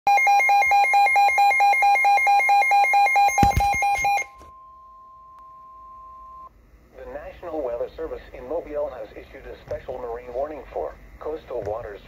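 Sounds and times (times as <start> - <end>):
rapid alarm beeping: 0.1 - 4.7.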